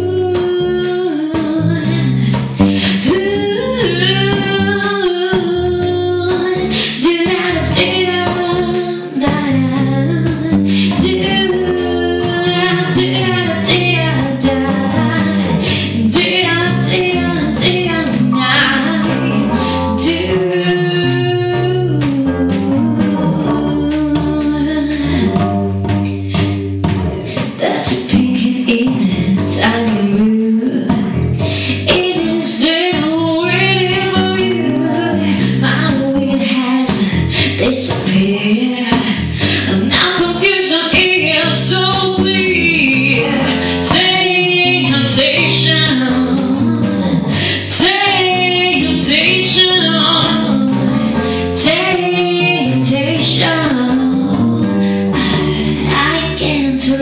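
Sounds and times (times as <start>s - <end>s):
plucked bass line: 0.0s - 57.0s
woman singing jazz: 0.0s - 57.0s.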